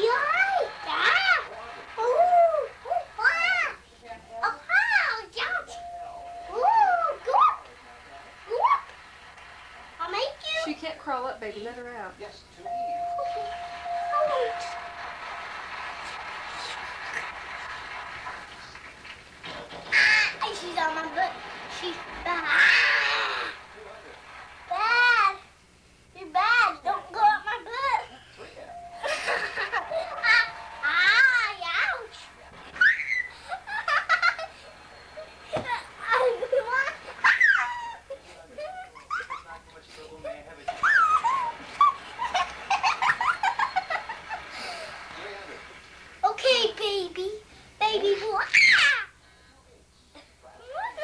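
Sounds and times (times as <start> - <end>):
low background noise: 0.0 - 51.0
child squealing: 32.8 - 33.4, 48.4 - 49.1
child squealing and giggling: 32.8 - 34.4, 35.6 - 38.0, 48.4 - 49.1.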